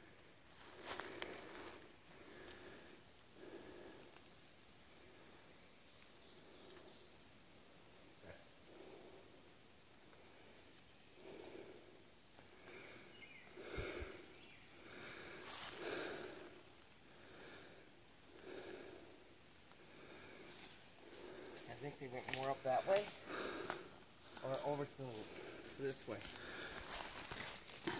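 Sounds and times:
twigs and leaves crackling: 0:00.5 - 0:04.4, 0:10.1 - 0:27.9
person breathing: 0:00.6 - 0:05.6, 0:08.6 - 0:27.9.

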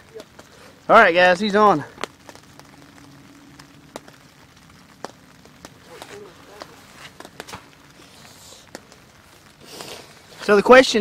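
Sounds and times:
light rain hiss: 0:00.0 - 0:11.0
raindrops ticking: 0:00.0 - 0:11.0.

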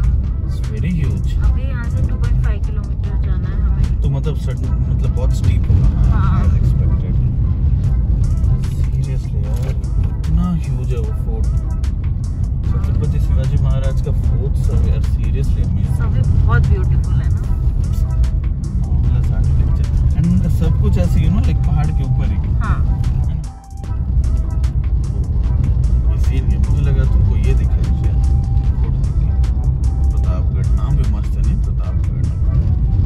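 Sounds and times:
car engine and road rumble: 0:00.0 - 0:33.0
music: 0:00.0 - 0:33.0
voices: 0:00.5 - 0:07.3, 0:08.6 - 0:11.5, 0:12.6 - 0:18.1, 0:18.8 - 0:23.5.

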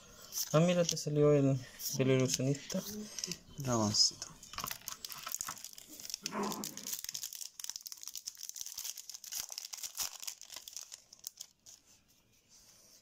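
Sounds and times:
plastic packaging crinkling: 0:00.4 - 0:01.2, 0:02.1 - 0:12.0.

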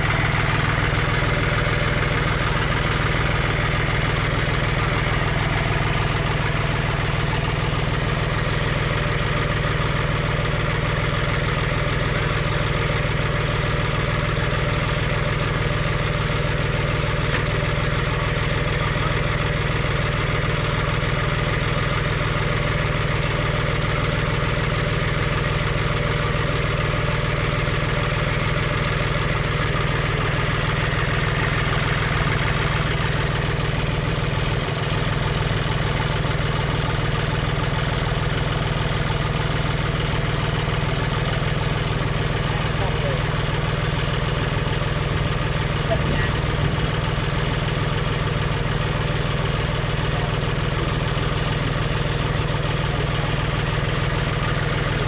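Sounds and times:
tractor diesel engine idling: 0:00.0 - 0:55.0.

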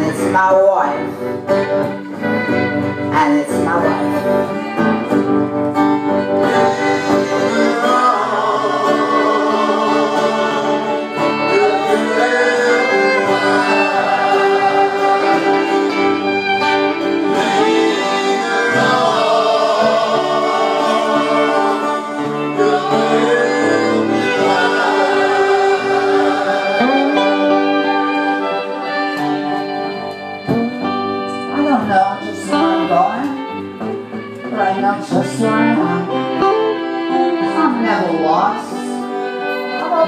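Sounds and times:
violin over electric guitar: 0:00.0 - 0:40.0
backing voices singing: 0:06.3 - 0:29.2.

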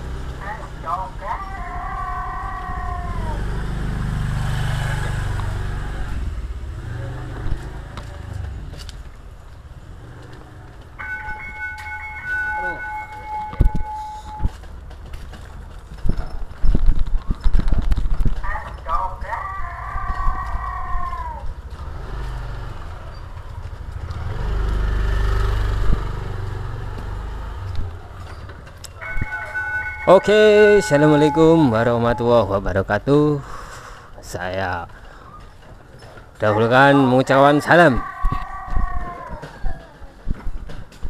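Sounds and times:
cart rumbling: 0:00.0 - 0:41.0
person calling out: 0:00.4 - 0:03.4, 0:18.4 - 0:21.5, 0:29.0 - 0:32.6, 0:36.4 - 0:40.0
steady high tone: 0:11.0 - 0:14.6, 0:28.9 - 0:32.5.

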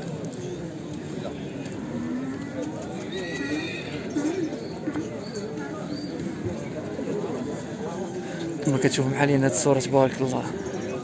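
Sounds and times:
horse neighing: 0:02.4 - 0:04.4.

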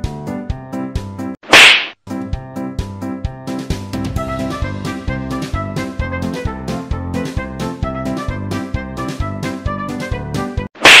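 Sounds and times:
loud slap: 0:01.5 - 0:02.0, 0:10.8 - 0:11.0
comedy music with steady beat: 0:02.1 - 0:10.7.

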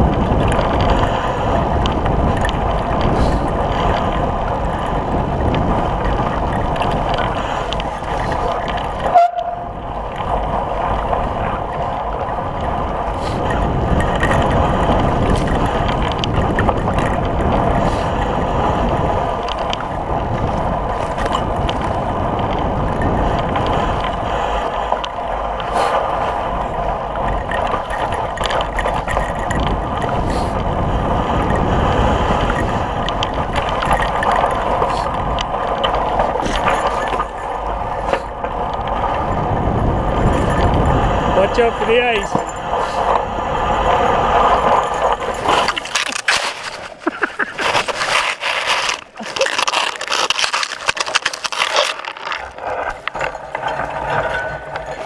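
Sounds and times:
bike tyre and rattle: 0:00.0 - 0:55.0
wind on microphone: 0:00.0 - 0:55.0.

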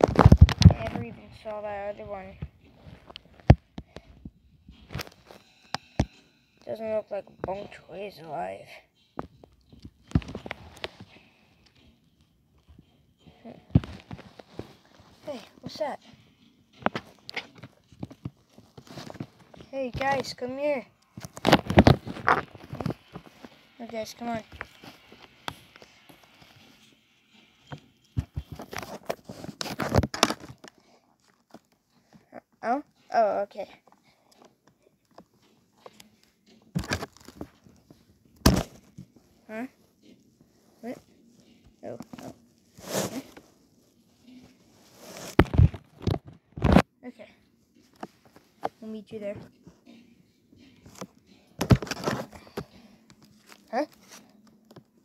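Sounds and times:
plush toys rustling: 0:00.0 - 0:06.1, 0:12.5 - 0:46.8, 0:47.7 - 0:55.0
handling knocks and clicks: 0:27.7 - 0:31.8.

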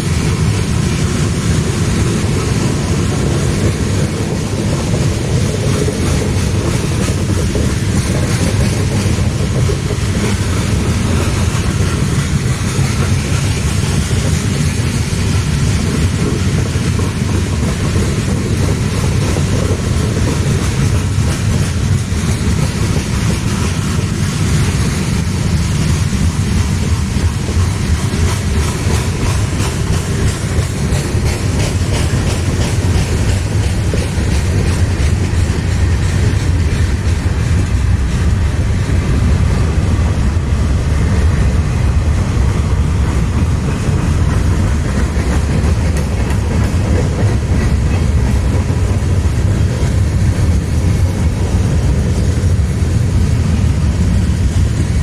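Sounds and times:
freight train rolling past: 0:00.0 - 0:55.0
wheels clacking over rail joints: 0:00.0 - 0:55.0.

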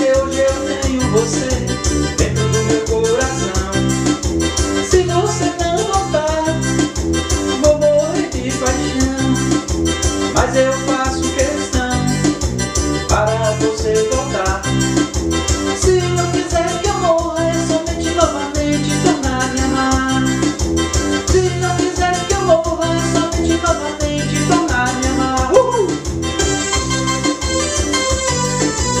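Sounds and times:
keyboard lead melody: 0:00.0 - 0:29.0
programmed drum and bass beat: 0:00.0 - 0:29.0.

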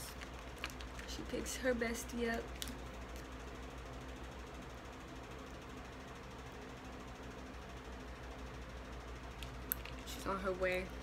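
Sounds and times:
low hum with faint hiss: 0:00.0 - 0:11.0.

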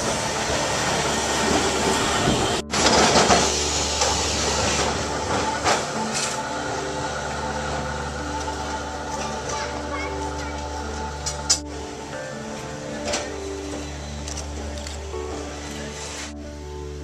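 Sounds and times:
tram motor hum: 0:00.0 - 0:17.0
tram wheels rumbling on rails: 0:00.0 - 0:17.0.

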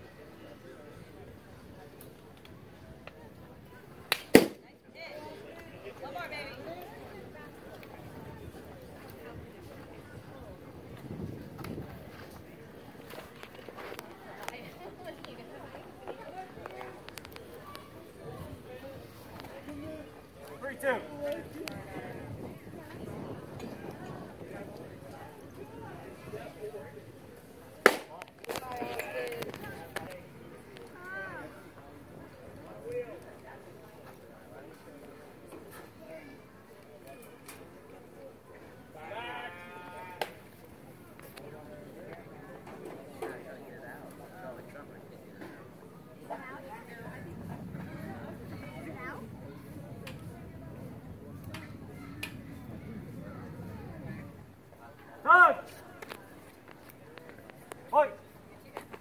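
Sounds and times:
voices of onlookers: 0:00.0 - 0:59.0
baseball bat hitting ball: 0:04.1 - 0:04.6, 0:27.8 - 0:28.1
man shouting a call: 0:55.2 - 0:55.7, 0:57.9 - 0:58.2.

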